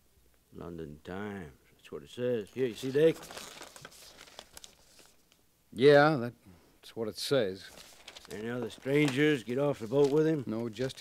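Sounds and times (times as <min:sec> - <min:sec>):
papers rustling and crackling: 0:02.5 - 0:05.4, 0:07.6 - 0:11.0.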